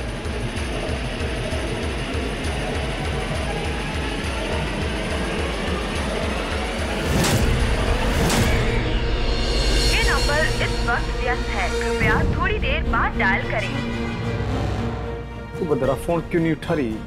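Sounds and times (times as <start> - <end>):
sustained drone: 0.0 - 15.5
suspenseful music with low pulse: 0.0 - 17.0.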